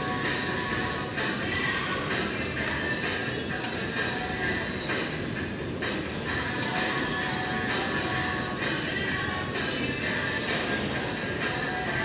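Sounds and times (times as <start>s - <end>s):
dense background music: 0.0s - 12.0s.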